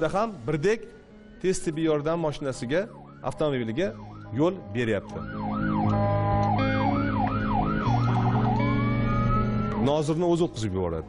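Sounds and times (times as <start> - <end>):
ambulance siren: 2.8 - 10.1.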